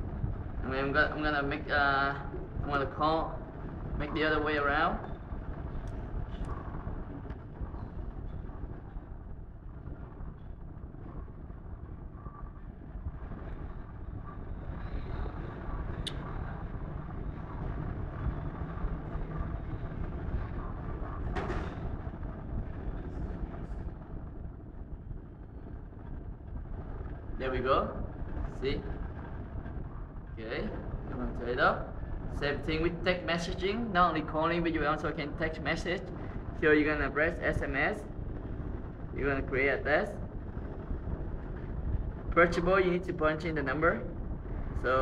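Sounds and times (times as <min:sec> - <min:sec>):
low background rumble: 0:00.0 - 0:45.0.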